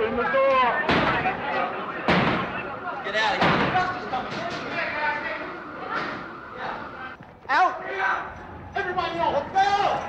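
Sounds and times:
people's voices: 0.0s - 10.0s
sharp loud bang: 2.1s - 2.6s, 3.3s - 4.7s.

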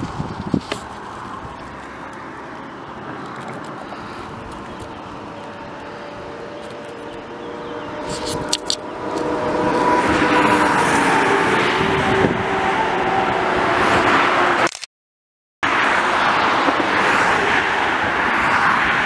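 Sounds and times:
road traffic passing: 0.0s - 14.7s, 15.6s - 19.0s.

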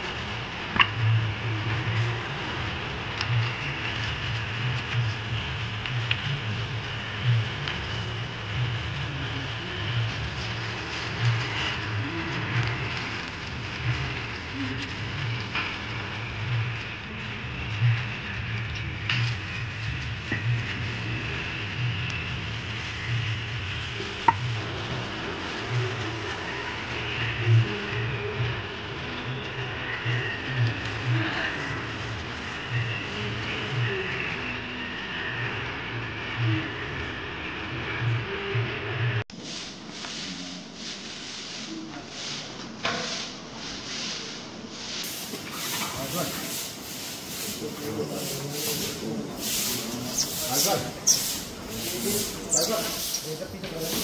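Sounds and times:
brush scrubbing metal: 39.4s - 54.0s
water running from hose: 45.0s - 54.0s.

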